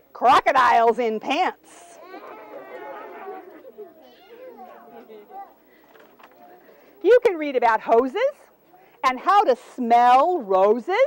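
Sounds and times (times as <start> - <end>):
children chattering: 1.8 - 7.0.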